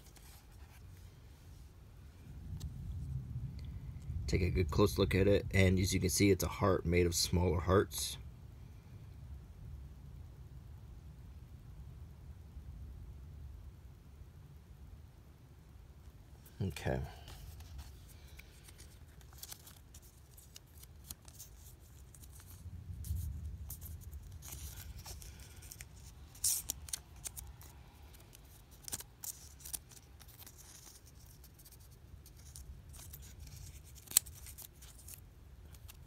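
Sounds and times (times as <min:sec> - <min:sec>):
plastic sleeve rustling: 0:00.0 - 0:01.1, 0:16.4 - 0:36.0.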